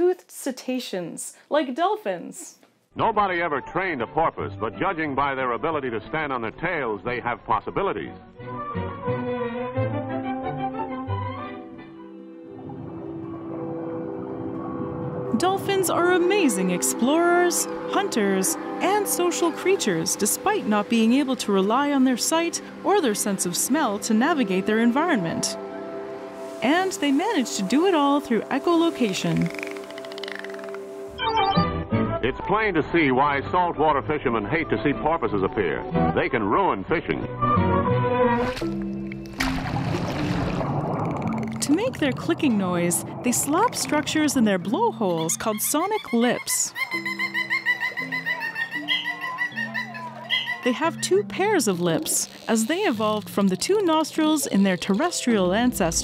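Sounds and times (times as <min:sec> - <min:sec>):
background music low notes: 0:02.9 - 0:56.0
churning water and bubbles: 0:12.4 - 0:18.0, 0:38.4 - 0:45.4
rushing water: 0:17.6 - 0:31.1, 0:38.5 - 0:44.8.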